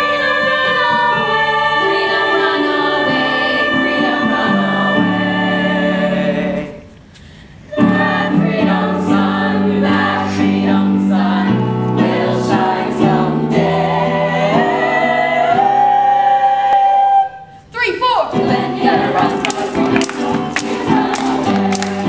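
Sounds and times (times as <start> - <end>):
chorus singing gospel show tune: 0.0 - 17.6, 18.2 - 22.0
instrumental accompaniment: 18.3 - 22.0.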